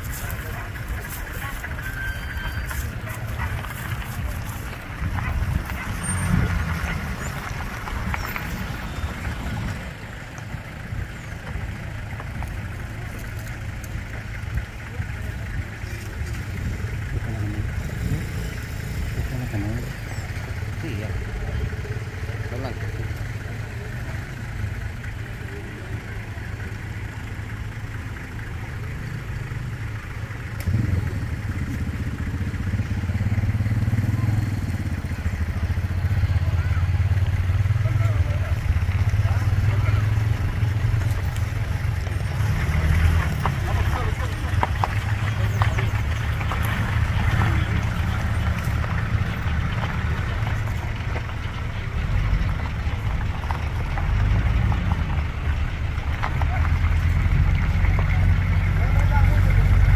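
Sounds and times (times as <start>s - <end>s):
people's voices: 0.0s - 59.9s
vehicle engines running at low speed: 0.0s - 59.9s.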